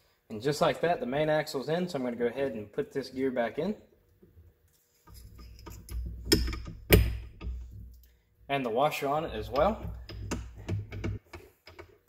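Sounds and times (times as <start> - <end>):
sharp metal clicks: 5.1 - 8.1, 9.3 - 12.0
metal gear handling noise: 9.3 - 11.2.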